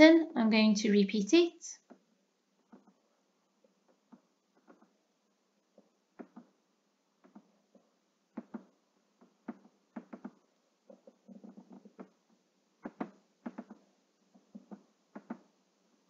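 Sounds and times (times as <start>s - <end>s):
computer mouse clicks: 8.3s - 10.4s, 12.8s - 15.5s.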